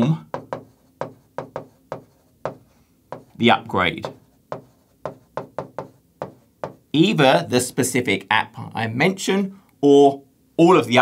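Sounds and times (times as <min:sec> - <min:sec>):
pen tapping on glass: 0:00.3 - 0:03.4, 0:04.0 - 0:06.8.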